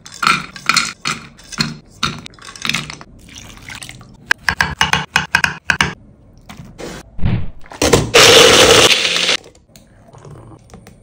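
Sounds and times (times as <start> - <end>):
electric blender running: 8.2 - 9.4.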